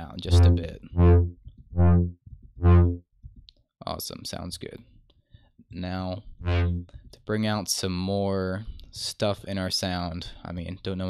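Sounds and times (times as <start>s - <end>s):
buzzy synth brass notes: 0.3s - 3.0s, 6.4s - 6.9s.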